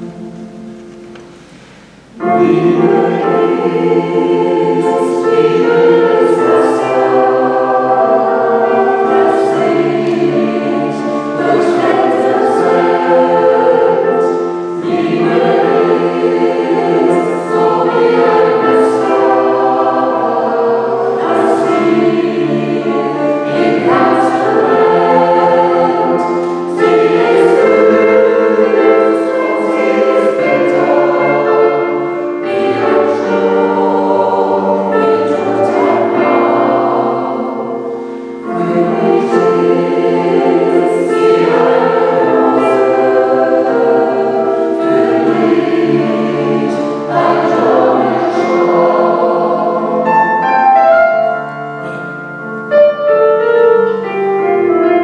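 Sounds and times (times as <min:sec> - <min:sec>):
mixed choir singing: 0:00.0 - 0:55.0
piano accompaniment: 0:00.0 - 0:55.0.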